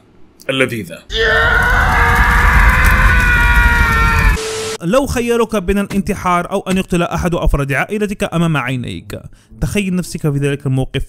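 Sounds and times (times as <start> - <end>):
distorted scream: 1.1 - 4.8.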